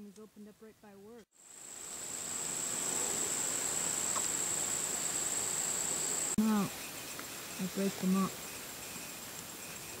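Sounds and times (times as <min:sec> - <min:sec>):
high-pitched insect drone: 0:01.4 - 0:10.0.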